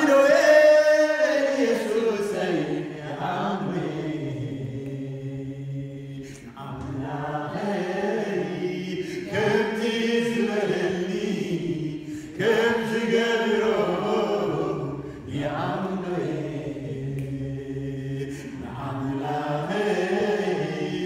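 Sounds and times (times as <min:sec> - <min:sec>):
voices chanting in worship: 0:00.0 - 0:21.0.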